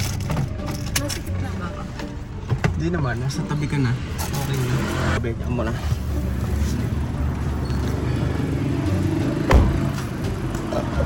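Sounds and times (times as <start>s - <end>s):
car door shutting: 9.4s - 10.0s.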